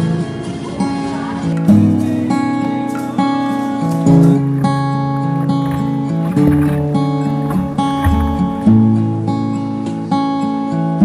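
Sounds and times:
acoustic guitar strumming chords: 0.0s - 11.0s.

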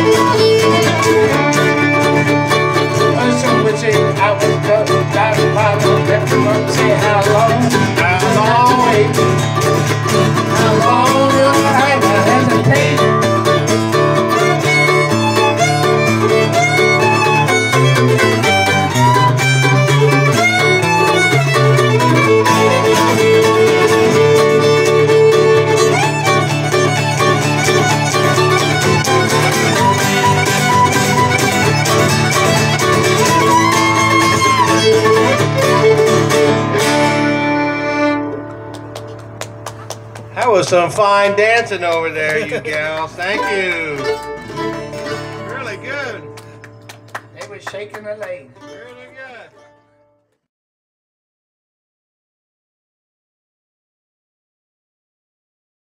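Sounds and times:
fiddle sliding notes: 0.0s - 39.2s, 40.4s - 46.7s
string band tune: 0.0s - 50.4s.

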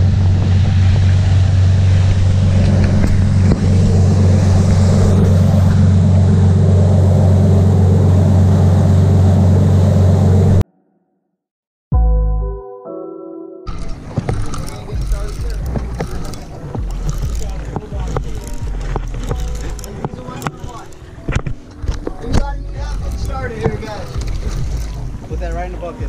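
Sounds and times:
wind and boat rumble: 0.0s - 10.6s, 13.7s - 26.0s.

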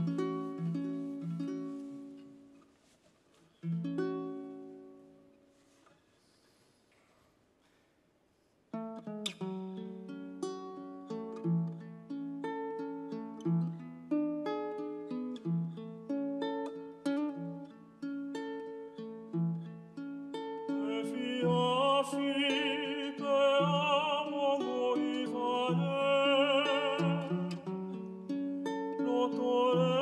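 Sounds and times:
ukulele plucked arpeggios: 0.0s - 2.5s, 3.6s - 5.0s, 9.5s - 30.0s
man singing: 20.7s - 28.1s, 28.9s - 30.0s.

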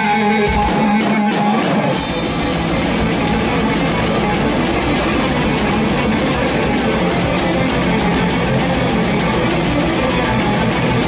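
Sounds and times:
bass: 0.0s - 11.0s
distorted electric guitars: 0.0s - 11.0s
drums and cymbals: 0.5s - 11.0s.

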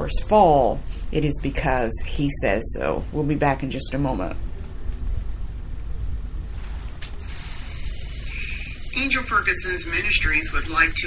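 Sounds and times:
steady high hiss: 6.5s - 11.0s.

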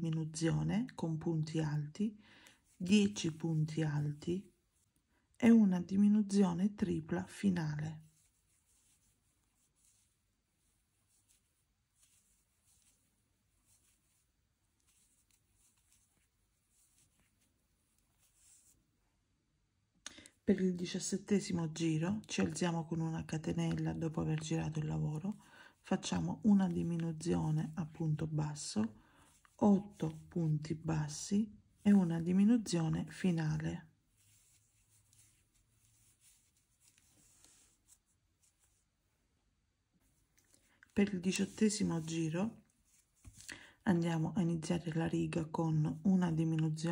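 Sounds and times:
crochet hook rustling yarn: 0.0s - 46.9s.

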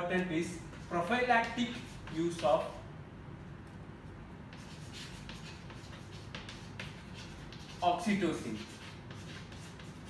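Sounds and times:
chalk scratching on chalkboard: 0.4s - 2.8s, 4.5s - 10.0s.

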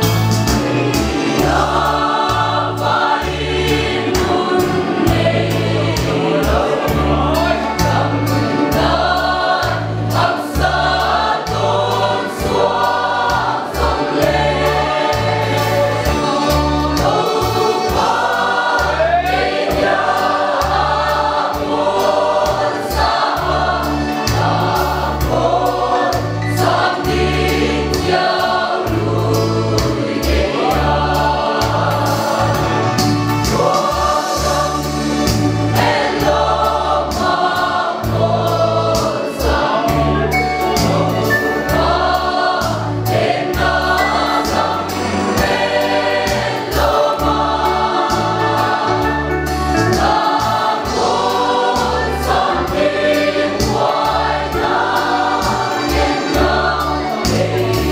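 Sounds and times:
choir singing a hymn: 0.0s - 57.9s
keyboard accompaniment: 0.0s - 57.9s.

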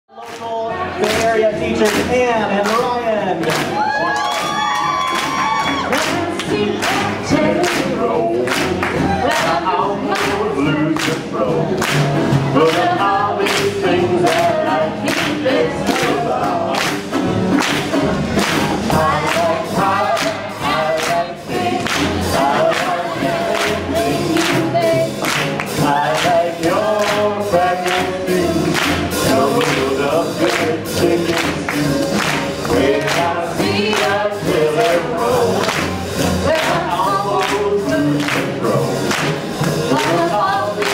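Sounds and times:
person singing: 0.1s - 11.8s, 18.8s - 40.9s
swing jazz band: 0.3s - 40.9s
drums steady beat: 1.0s - 40.9s.

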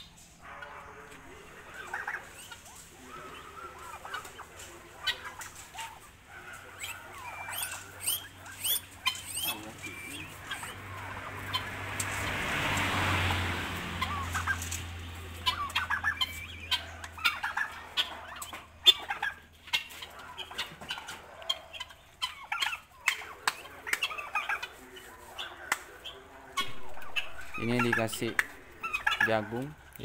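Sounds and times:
guinea fowl and turkeys calling: 0.0s - 30.0s.

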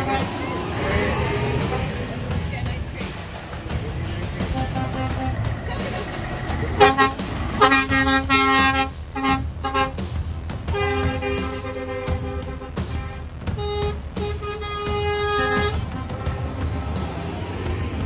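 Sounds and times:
truck horn blasts: 0.0s - 2.2s, 4.4s - 10.1s, 10.7s - 17.0s
truck engines running: 0.0s - 18.0s.

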